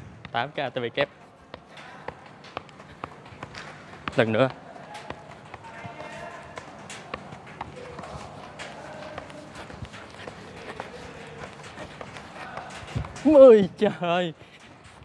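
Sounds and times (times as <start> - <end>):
faint background voices: 1.0 - 15.0.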